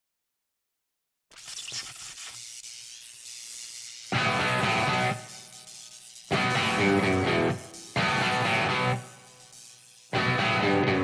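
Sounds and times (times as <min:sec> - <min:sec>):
amplifier hiss: 0:01.4 - 0:11.0.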